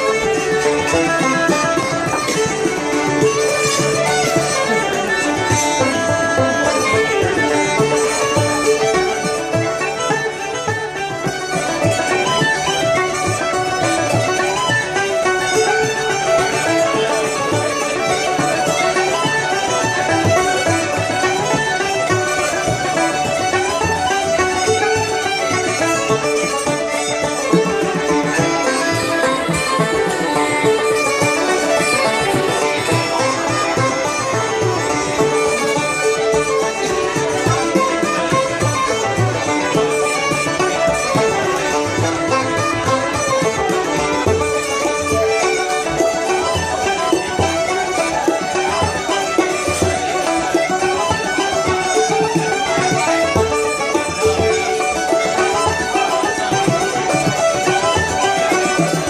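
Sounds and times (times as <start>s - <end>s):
folk session music with fiddle: 0.0s - 59.0s.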